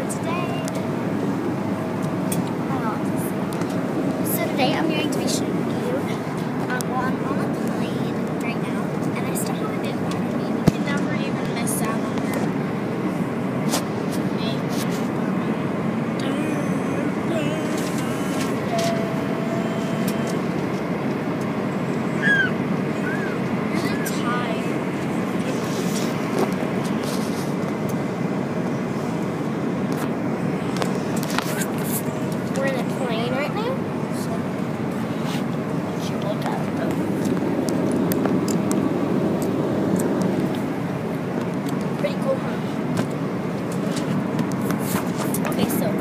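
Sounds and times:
airliner cabin rumble: 0.0s - 46.0s.

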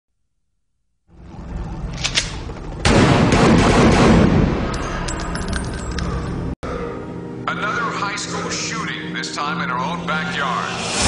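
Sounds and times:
gunshots: 2.2s - 4.7s
rapid gunfire burst: 2.8s - 4.4s.

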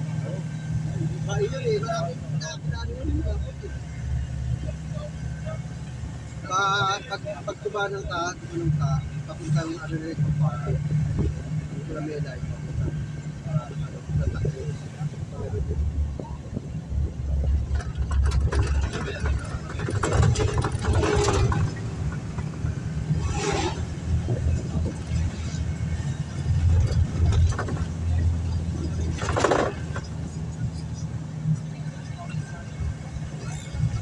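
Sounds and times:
car engine and road hum: 0.0s - 34.0s
noisy rushes: 8.6s - 34.0s.

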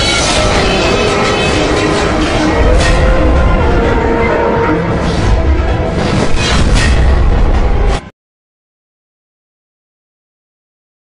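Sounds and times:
dense rumbling music mix: 0.0s - 8.1s.

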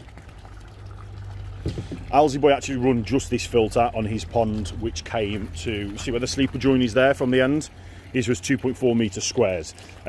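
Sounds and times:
low steady hum: 0.0s - 10.0s
water flowing through filter: 0.0s - 10.0s.

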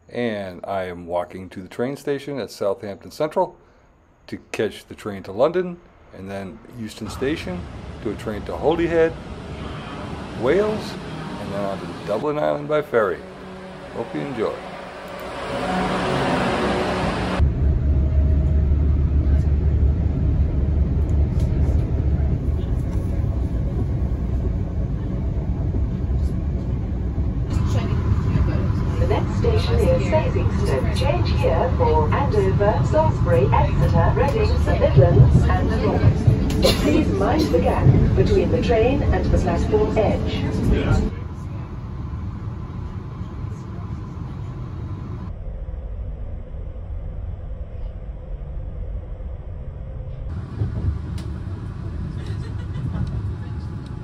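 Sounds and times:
train rumbling: 5.0s - 54.0s
on-board announcement voice: 6.2s - 17.4s, 27.5s - 41.7s
platform noise: 7.0s - 17.8s
faint passenger voices: 21.2s - 26.9s, 27.5s - 45.3s, 51.2s - 54.0s.

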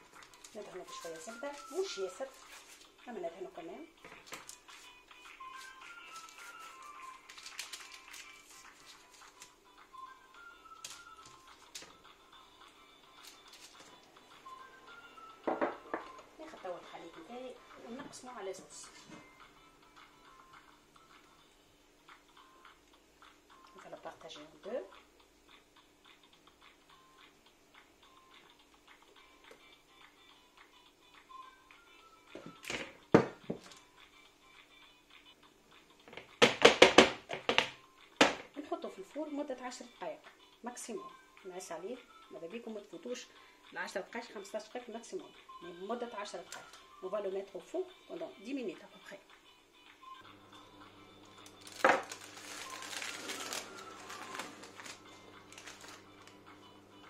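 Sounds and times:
background music simple melody: 0.0s - 57.0s.

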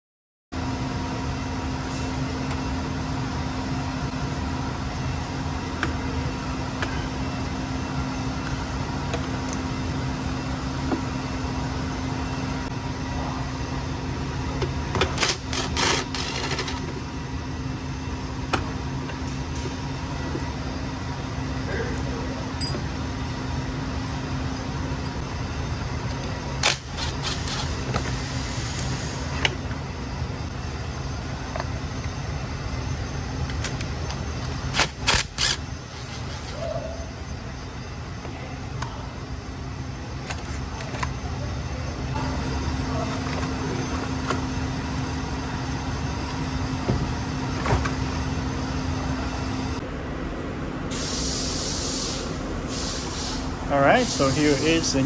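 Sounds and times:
low workshop drone: 0.5s - 55.0s
burst of hiss: 50.9s - 54.7s.

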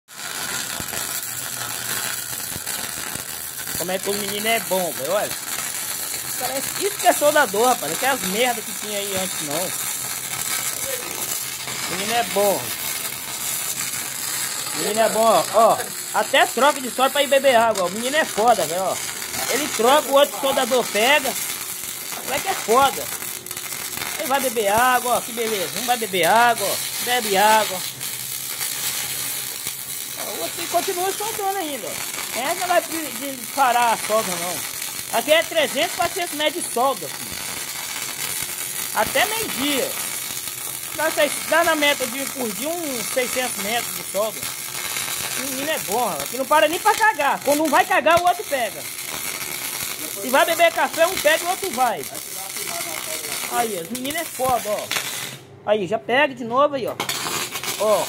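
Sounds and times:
welding arc pops: 0.1s - 55.5s, 56.9s - 58.0s
arc welding sizzling: 0.1s - 55.6s, 56.8s - 58.0s.

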